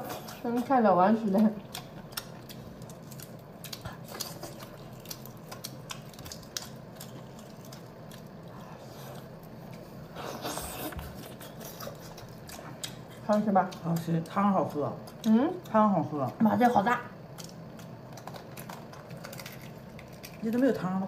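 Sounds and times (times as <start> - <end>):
moist chewing: 0.0 - 14.4
low steady hum: 0.0 - 21.0.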